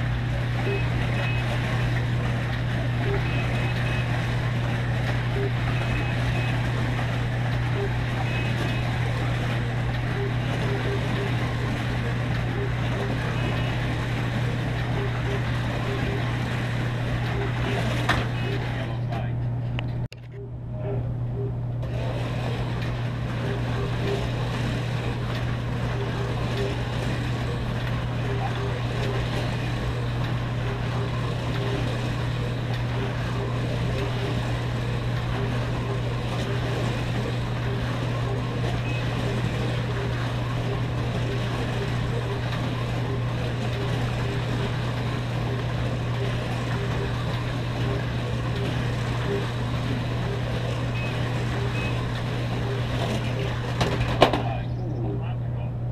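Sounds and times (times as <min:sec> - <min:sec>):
cars rattling in slots: 0:00.0 - 0:20.4, 0:21.4 - 0:54.8
constant low hum: 0:00.0 - 0:55.9
slot car motors whirring: 0:00.0 - 0:55.9.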